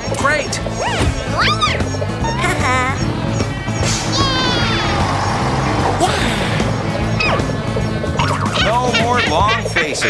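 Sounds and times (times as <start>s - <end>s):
cartoon background music: 0.0s - 10.0s
squeaky vocal noises: 0.7s - 3.1s, 3.9s - 5.1s.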